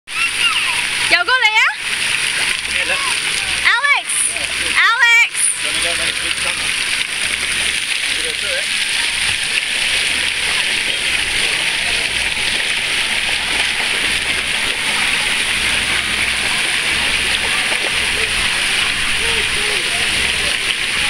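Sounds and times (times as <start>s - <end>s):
water spraying into pool: 0.1s - 21.0s
light splashing: 0.2s - 21.0s.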